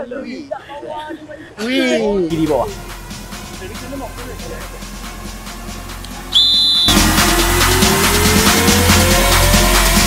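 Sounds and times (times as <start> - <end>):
loud music with heavy beat: 2.3 - 10.0
whistle blast: 6.3 - 7.3.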